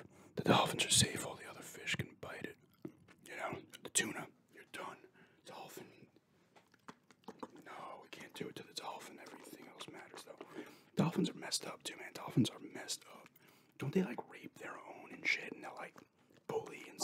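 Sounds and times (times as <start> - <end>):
close whispering: 0.0 - 6.2, 7.4 - 17.0
gum chewing clicks: 2.5 - 4.0, 6.6 - 10.9, 14.1 - 16.8.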